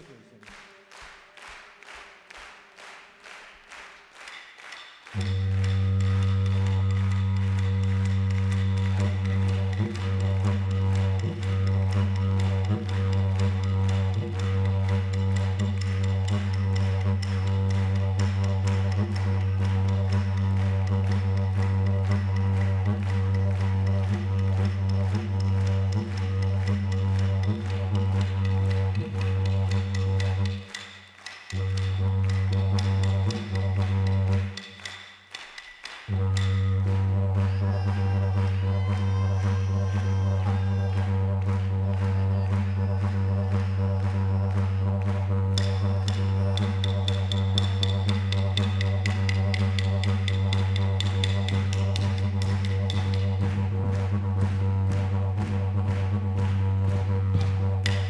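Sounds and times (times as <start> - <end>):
didgeridoo drone: 5.2 - 30.8, 31.5 - 34.8, 36.1 - 58.0.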